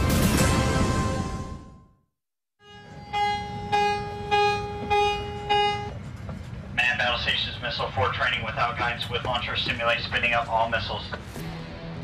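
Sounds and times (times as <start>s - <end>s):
alarm horn pulses: 2.6s - 6.2s.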